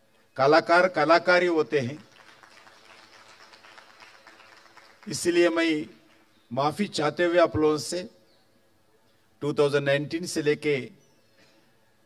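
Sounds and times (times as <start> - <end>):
faint hall background noise: 0.0 - 12.0.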